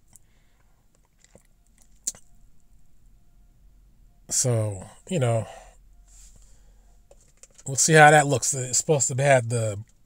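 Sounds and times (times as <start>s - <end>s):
low hum: 0.0s - 9.1s.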